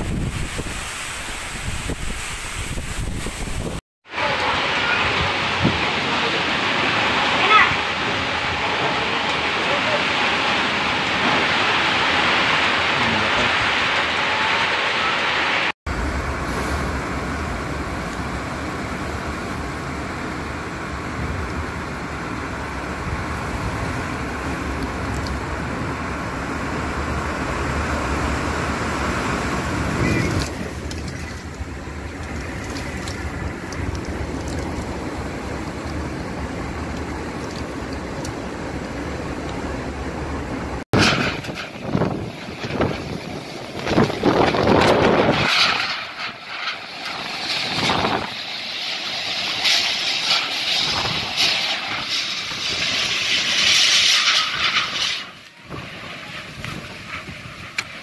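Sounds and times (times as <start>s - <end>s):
strong wind buffeting microphone: 0.0s - 14.8s, 15.9s - 55.0s, 55.6s - 58.0s
driving rain: 0.0s - 58.0s.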